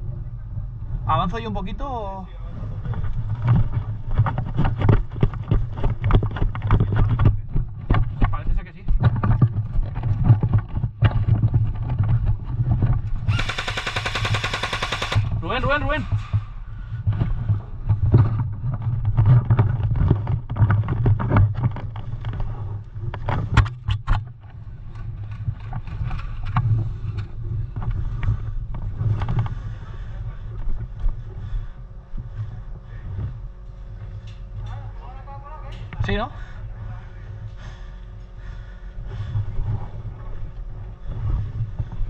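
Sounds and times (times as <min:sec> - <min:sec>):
wind rumble: 0:00.0 - 0:42.0
gear clicks and knocks: 0:02.9 - 0:15.4, 0:17.1 - 0:29.6.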